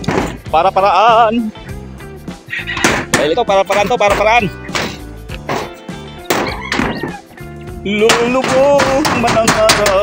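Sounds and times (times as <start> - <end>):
background music with singing: 0.0 - 10.0
hammer striking nails into metal: 8.0 - 10.0.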